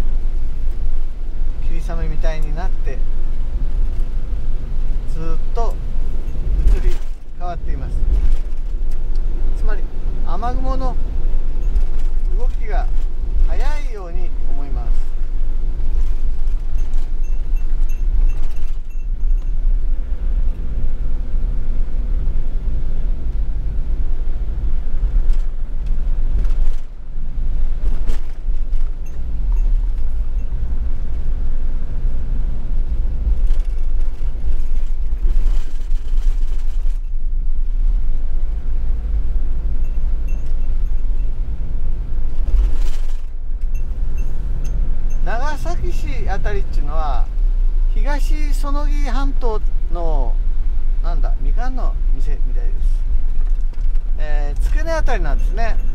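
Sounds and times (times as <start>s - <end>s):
vehicle engine and road rumble: 0.0s - 55.9s.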